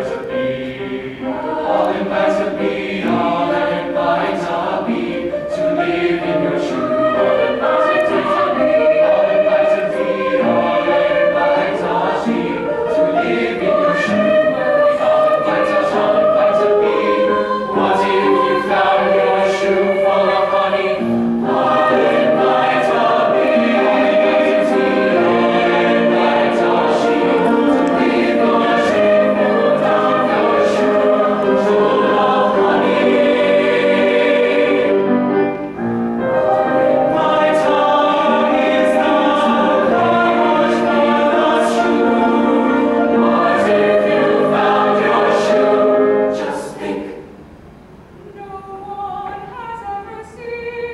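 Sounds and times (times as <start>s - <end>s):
choir singing: 0.0s - 47.5s, 48.3s - 50.9s.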